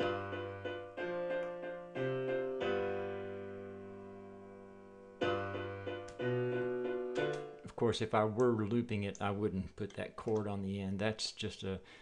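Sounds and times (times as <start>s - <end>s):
piano chords: 0.0s - 8.8s.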